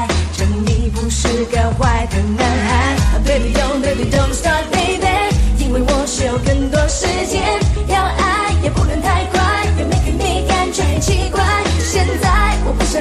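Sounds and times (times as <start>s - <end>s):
funk-pop backing band: 0.0s - 13.0s
heavy bass: 0.0s - 13.0s
steady drum beat: 0.0s - 13.0s
woman singing: 0.0s - 13.0s.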